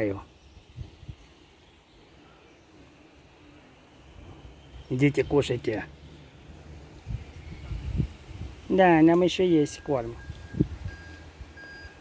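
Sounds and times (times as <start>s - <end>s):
reversing alarm beeping: 9.7s - 12.0s.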